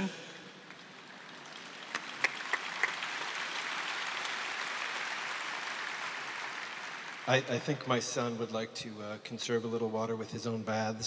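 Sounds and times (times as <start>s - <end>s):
audience applauding: 1.2s - 7.8s.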